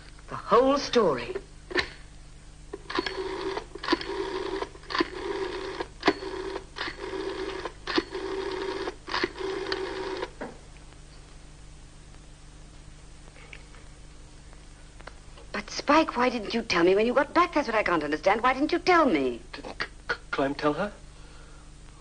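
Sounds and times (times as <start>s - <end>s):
rotary telephone dial clicking and whirring: 2.9s - 10.3s.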